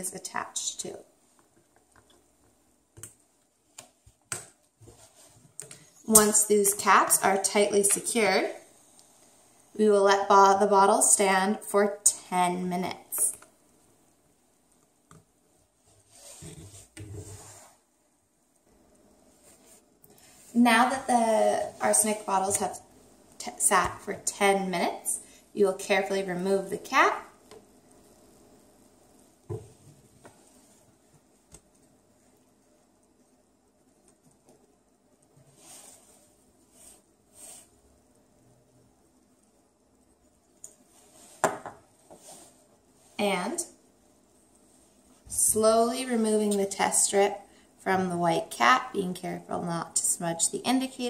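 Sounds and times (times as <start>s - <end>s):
soft brushing: 4.8s - 5.9s, 15.5s - 18.0s, 19.2s - 22.8s, 29.1s - 37.8s, 40.8s - 43.5s, 44.1s - 45.3s.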